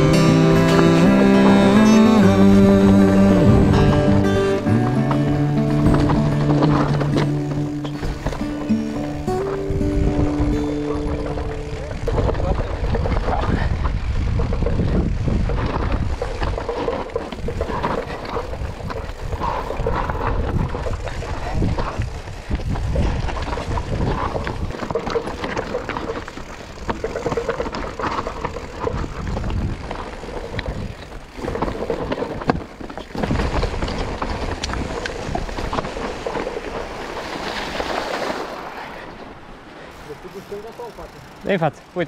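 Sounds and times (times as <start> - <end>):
guitar-backed music: 0.0 - 12.5
bike rattling over rough ground: 0.0 - 42.0
bike tyres clattering over stones: 3.8 - 38.8, 39.9 - 42.0.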